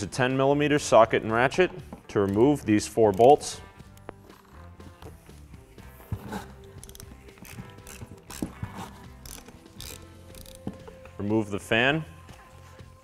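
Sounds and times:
socket ratchet clicking: 2.2 - 4.5, 6.6 - 10.9.

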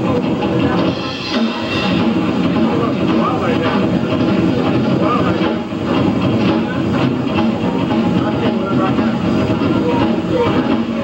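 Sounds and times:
drum kit: 0.0 - 11.0.

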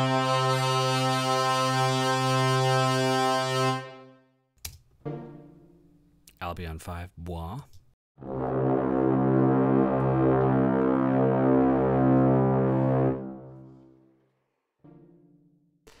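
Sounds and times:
brass ensemble chord: 0.0 - 4.4, 8.2 - 15.5.

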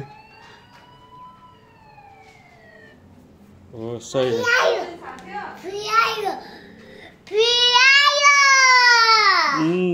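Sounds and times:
faint cartoon siren wail: 0.0 - 3.2.

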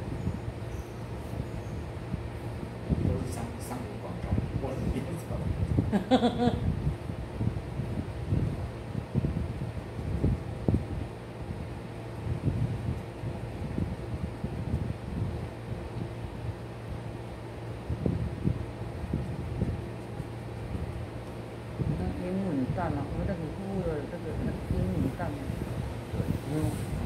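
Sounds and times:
low rumbles and thumps: 0.0 - 17.0, 17.8 - 27.0
low room hum: 0.0 - 27.0.

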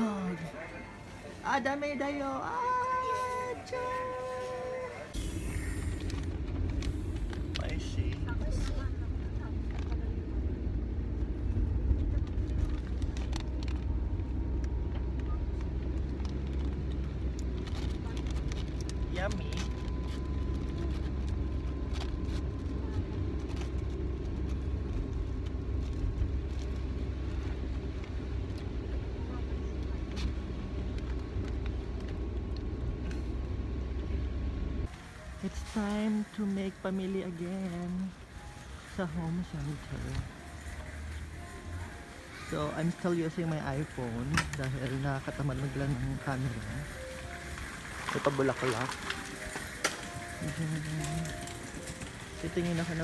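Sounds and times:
car engine rumble and road noise: 0.0 - 53.0.

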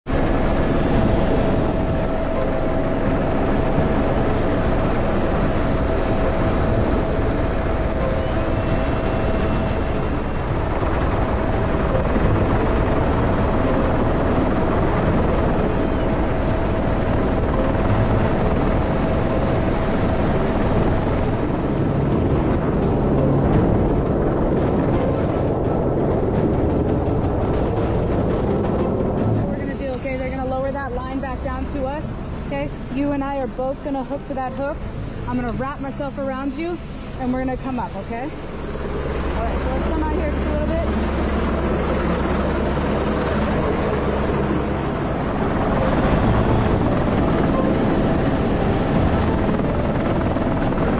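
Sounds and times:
helicopter rotor and engine noise: 0.1 - 50.9
steady whine: 0.1 - 50.9.

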